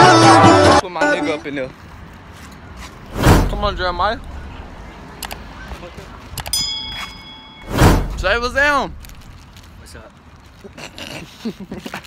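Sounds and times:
loud whoosh transition: 3.0 - 4.9, 7.6 - 9.4
bright bell-like ding: 6.5 - 7.9.

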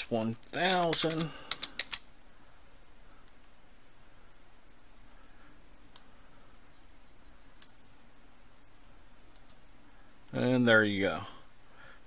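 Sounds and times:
faint background hiss: 0.0 - 12.0
computer mouse clicks: 0.7 - 2.1, 5.9 - 6.1, 9.3 - 9.6.

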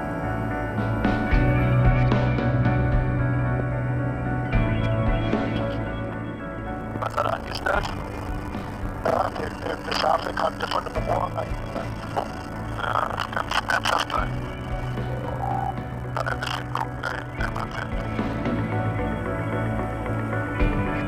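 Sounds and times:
background music: 0.0 - 21.0
helicopter engine drone: 0.0 - 21.0
crew talking over intercom: 7.0 - 18.2.

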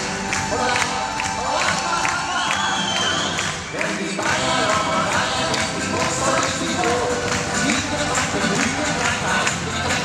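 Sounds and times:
crowd cheering and whooping: 0.0 - 4.0
dance music with steady beat: 0.0 - 10.0.

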